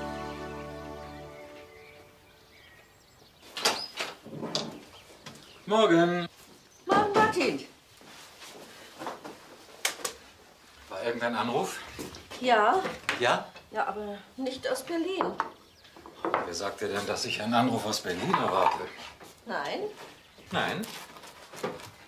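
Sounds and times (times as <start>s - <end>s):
soft music: 0.0s - 2.6s.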